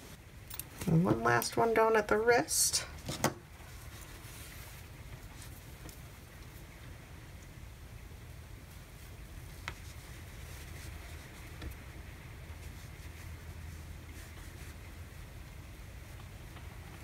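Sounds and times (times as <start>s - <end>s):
needle drawing yarn through fabric: 9.0s - 16.8s.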